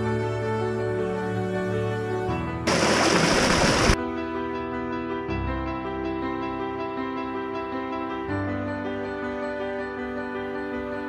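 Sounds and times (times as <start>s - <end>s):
soft background music: 0.0s - 2.6s, 4.0s - 11.0s
loud rushing water: 2.7s - 4.0s.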